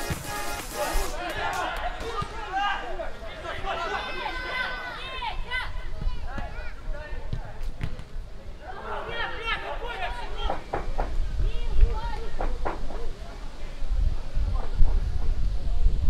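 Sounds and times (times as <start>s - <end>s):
players shouting: 0.1s - 6.9s.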